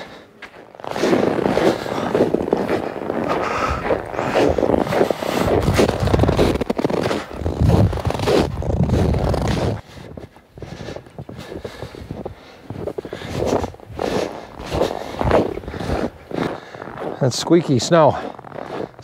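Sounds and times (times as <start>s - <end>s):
boots crunching in snow: 0.0s - 19.0s.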